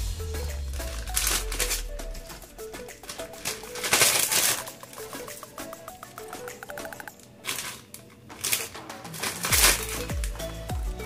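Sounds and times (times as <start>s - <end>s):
light background music: 0.0s - 11.0s
plastic bag crinkling: 0.8s - 10.4s.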